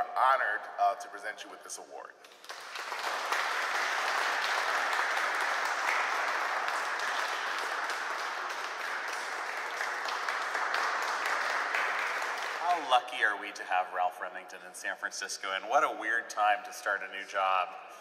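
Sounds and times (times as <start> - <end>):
audience applauding: 2.2 - 13.4.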